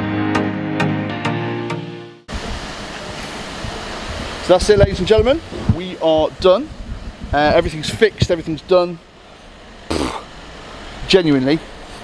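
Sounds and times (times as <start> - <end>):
background music: 0.0 - 2.3
wind on microphone: 3.5 - 8.4.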